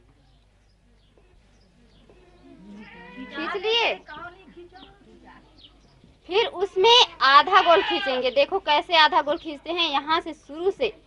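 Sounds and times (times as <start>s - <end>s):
goats bleating: 2.1s - 3.9s, 7.2s - 8.4s.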